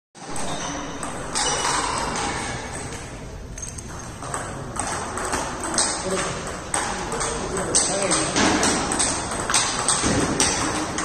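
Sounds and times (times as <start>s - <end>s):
table tennis ball clicking: 3.6s - 11.0s.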